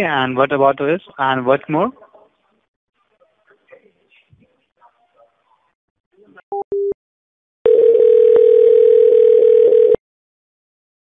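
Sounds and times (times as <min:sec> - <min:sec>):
steady telephone tone: 0:07.6 - 0:10.0
telephone beeps: 0:07.7 - 0:10.0.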